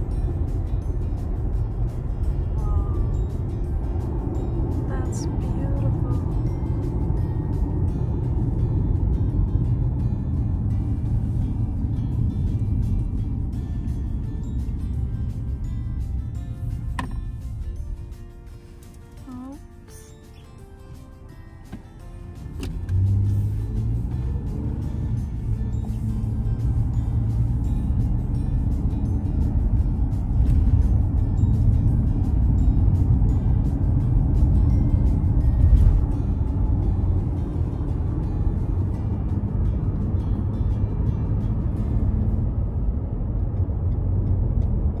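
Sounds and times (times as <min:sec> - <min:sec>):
car road and engine rumble: 0:00.0 - 0:45.0.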